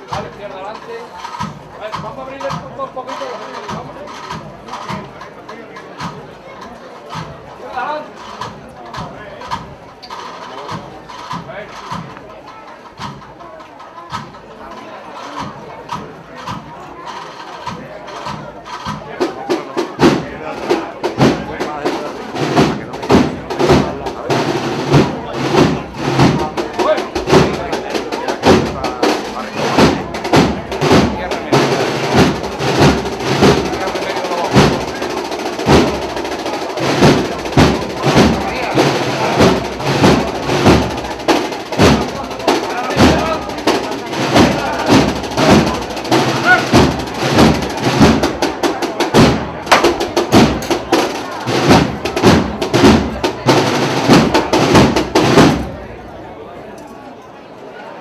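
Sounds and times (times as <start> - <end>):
band playing a march: 0.0 - 56.3
steady drumbeat: 0.0 - 56.3.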